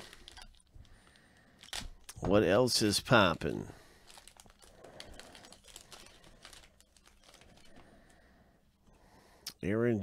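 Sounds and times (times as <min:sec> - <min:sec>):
foil wrapper crinkling: 0:00.0 - 0:08.0.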